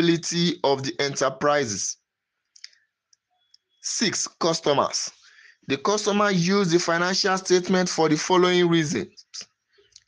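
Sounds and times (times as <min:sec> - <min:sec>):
man speaking: 0:00.0 - 0:02.0, 0:03.8 - 0:09.4.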